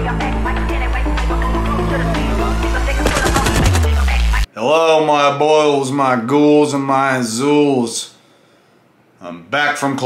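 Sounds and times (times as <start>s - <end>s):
electronic music with heavy bass: 0.0s - 4.5s
rifle gunfire burst: 3.0s - 4.2s.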